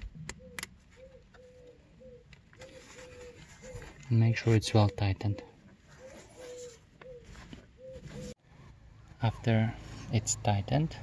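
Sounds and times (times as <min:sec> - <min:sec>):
bird calling faintly: 0:00.3 - 0:08.4.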